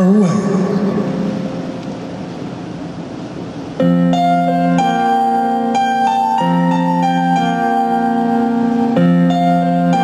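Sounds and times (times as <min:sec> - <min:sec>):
concert arena ambience: 0:00.0 - 0:10.0.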